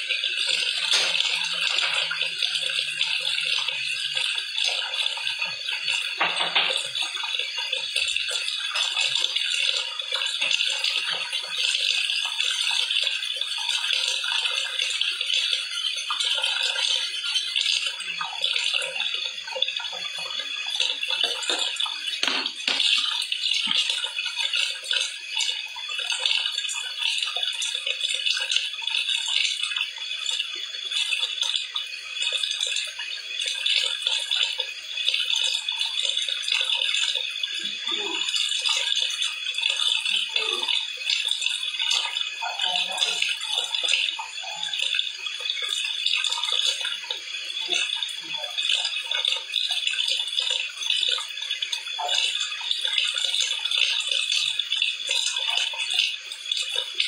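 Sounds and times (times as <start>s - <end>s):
water running from a tap: 0.0s - 57.0s
knock: 22.2s - 22.9s.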